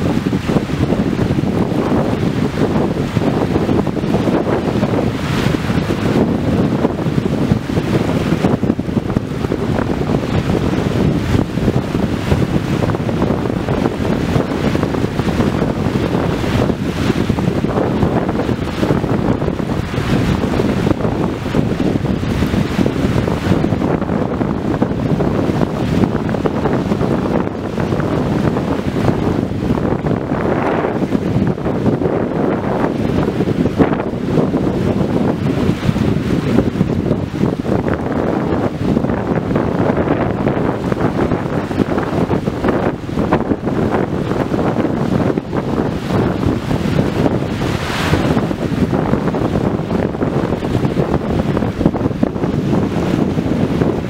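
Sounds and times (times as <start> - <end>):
ocean surf: 0.0 - 54.0
wind buffeting microphone: 0.0 - 54.0.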